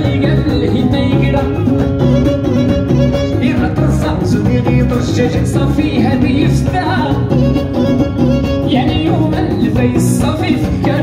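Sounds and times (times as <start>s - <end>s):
drum kit: 0.0s - 11.0s
live wedding band music: 0.0s - 11.0s.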